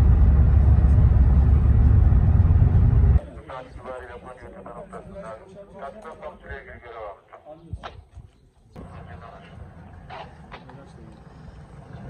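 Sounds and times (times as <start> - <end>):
man's voice outdoors: 3.2 - 11.3.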